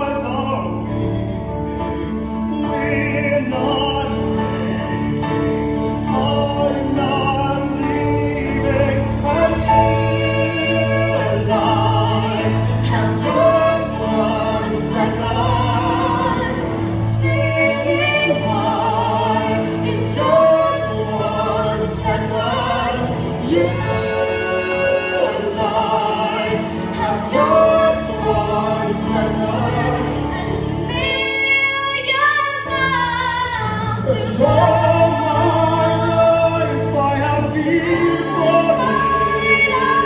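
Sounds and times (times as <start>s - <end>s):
man singing with vibrato: 0.0s - 1.2s, 2.5s - 32.8s, 34.0s - 40.0s.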